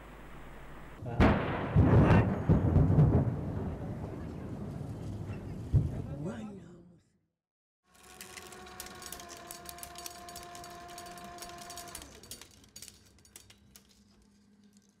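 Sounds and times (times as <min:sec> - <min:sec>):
motor whine: 0:07.9 - 0:12.4
film reel crackling and ticking: 0:07.9 - 0:15.0.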